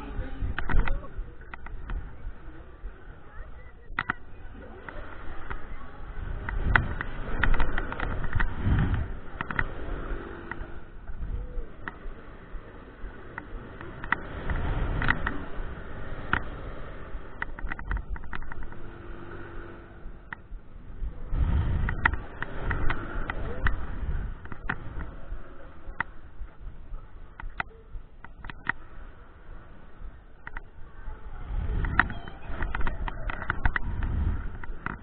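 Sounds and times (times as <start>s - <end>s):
ride gondola rattling: 0.0s - 35.0s
wind rushing over microphone: 0.0s - 35.0s
sharp clicks and knocks: 0.5s - 2.2s, 3.8s - 11.2s, 13.0s - 20.6s, 21.8s - 26.7s, 27.3s - 28.9s, 30.3s - 30.8s, 31.7s - 35.0s.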